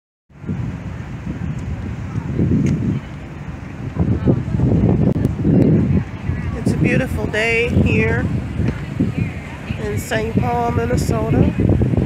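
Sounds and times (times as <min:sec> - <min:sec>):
wind buffeting microphone: 0:00.3 - 0:12.0.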